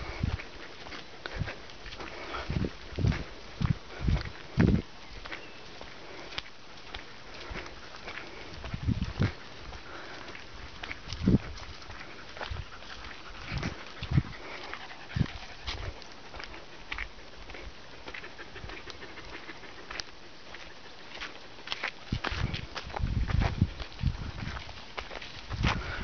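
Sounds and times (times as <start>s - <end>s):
dogs breathing and moving: 0.0s - 26.0s
footsteps on dirt track: 0.0s - 26.0s.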